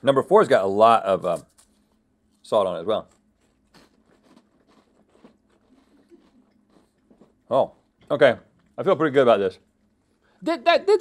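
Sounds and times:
crackers being chewed: 0:03.0 - 0:08.8.

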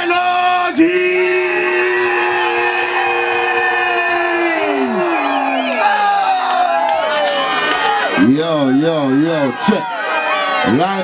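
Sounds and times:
loud held horn chord bending down: 0:01.1 - 0:06.0
warbling siren-like tones: 0:01.2 - 0:07.5.

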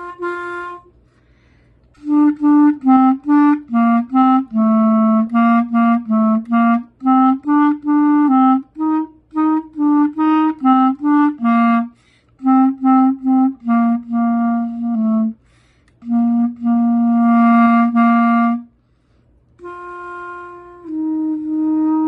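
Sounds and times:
solo clarinet melody: 0:00.0 - 0:01.0, 0:01.9 - 0:18.8, 0:19.6 - 0:22.0.

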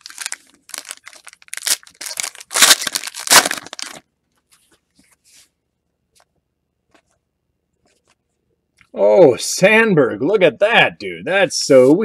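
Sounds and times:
foil wrapper crinkling: 0:00.0 - 0:04.1.

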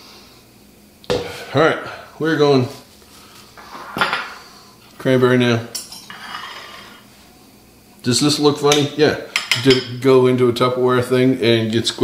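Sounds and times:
dishes and utensils handled: 0:05.7 - 0:07.0, 0:08.7 - 0:10.0.

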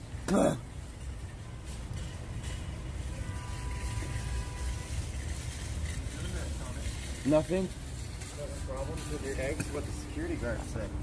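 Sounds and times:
street rumble: 0:00.0 - 0:11.0.

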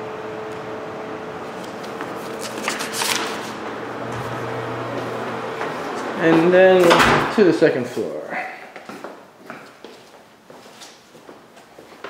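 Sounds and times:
steady low hum: 0:00.0 - 0:08.4.

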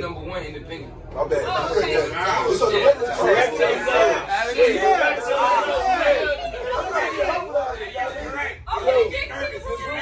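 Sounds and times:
men talking over each other: 0:00.2 - 0:10.0.

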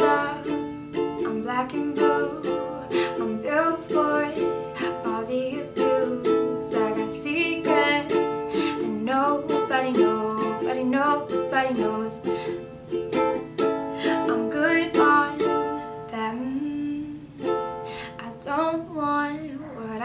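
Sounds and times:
ukulele strummed chords: 0:00.0 - 0:19.4
woman singing: 0:00.0 - 0:20.0.

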